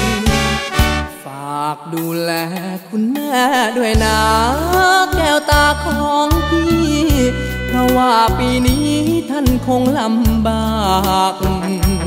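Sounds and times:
backing music: 0:00.0 - 0:12.0
man singing: 0:00.0 - 0:12.0.

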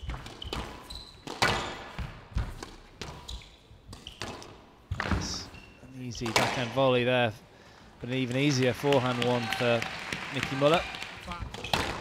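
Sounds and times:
squash ball knocks: 0:11.4 - 0:12.0.

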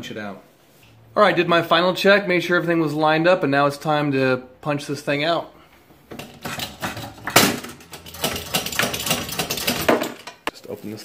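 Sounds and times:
hydraulic press clanks and creaks: 0:06.1 - 0:10.5.

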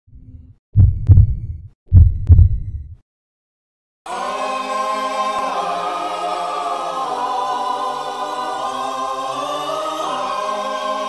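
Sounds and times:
heartbeat thumps: 0:00.8 - 0:03.0
choir-like music chord: 0:04.1 - 0:11.0.

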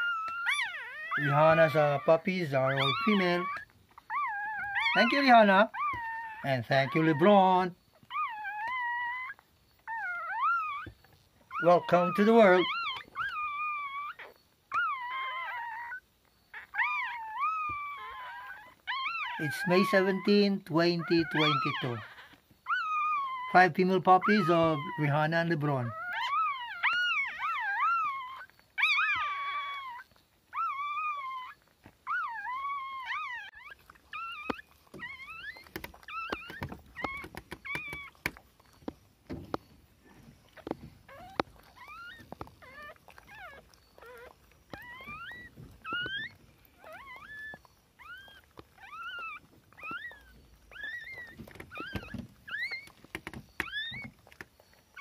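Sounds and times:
newborn puppy crying: 0:00.0 - 0:55.0.

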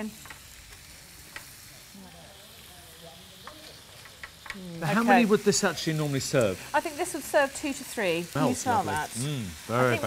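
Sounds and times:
chicken sizzling in a pan: 0:00.0 - 0:10.0.

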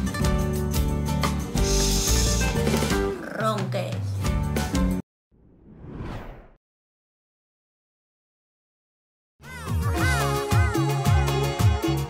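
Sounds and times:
rising whoosh: 0:05.4 - 0:06.6.

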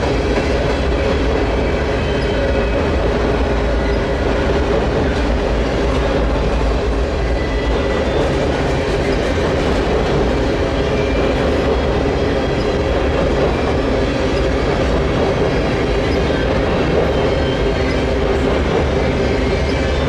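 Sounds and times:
freight train rolling across bridge: 0:00.0 - 0:20.0.

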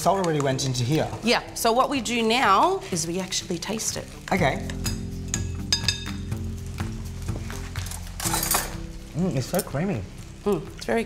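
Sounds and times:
background music with low notes: 0:00.0 - 0:11.0
metal spoon clinking glass bowl: 0:04.8 - 0:06.2, 0:08.2 - 0:08.8.

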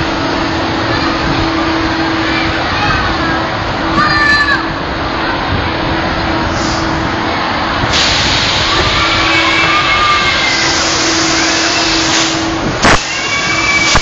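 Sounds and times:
rushing wind noise: 0:00.0 - 0:14.0.

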